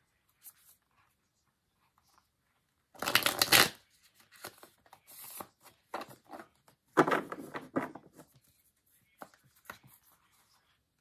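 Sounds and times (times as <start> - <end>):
cards being shuffled: 3.0 - 6.5.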